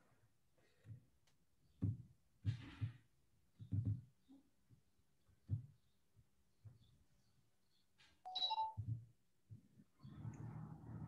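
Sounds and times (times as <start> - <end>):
short electronic beeps: 8.3 - 8.8.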